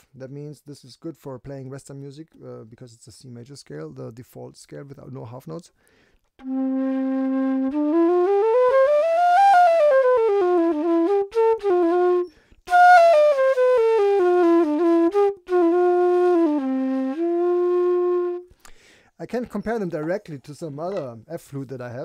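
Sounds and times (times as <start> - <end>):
bamboo flute played solo: 6.4 - 18.5.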